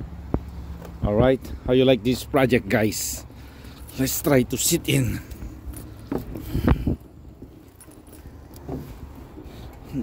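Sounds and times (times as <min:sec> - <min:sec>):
metal clunks and rattles of mower: 0:05.2 - 0:10.0.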